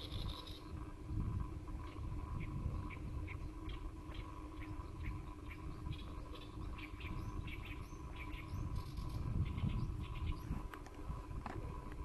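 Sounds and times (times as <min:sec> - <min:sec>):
faint steady hum: 0:00.0 - 0:12.0
small birds chirping: 0:00.0 - 0:12.0.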